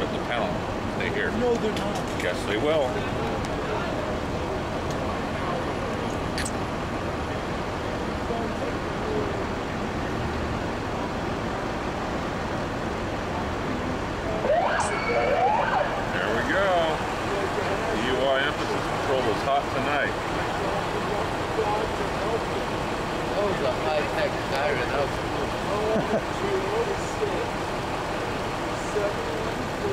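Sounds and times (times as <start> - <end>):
street traffic: 0.0 - 29.9
police siren: 14.4 - 17.0.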